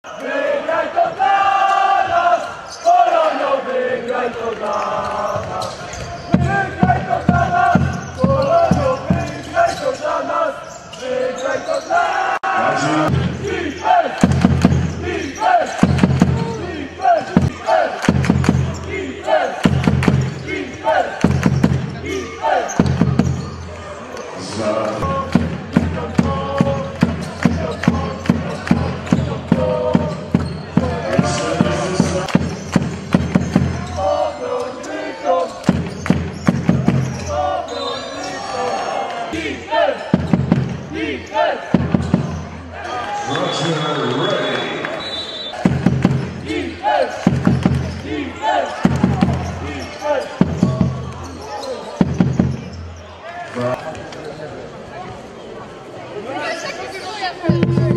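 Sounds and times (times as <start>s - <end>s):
basketball bouncing on wooden floor: 47.3s - 48.0s, 52.0s - 52.8s.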